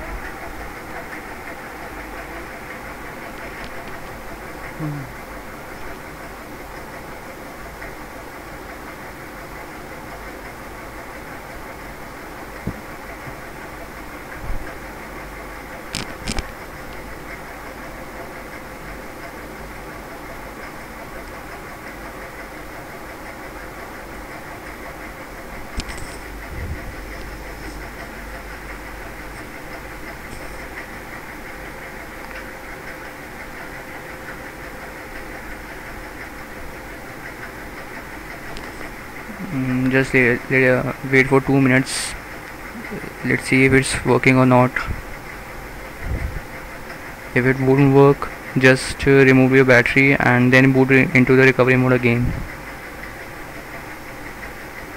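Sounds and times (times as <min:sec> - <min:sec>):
room hum: 0:00.0 - 0:54.9.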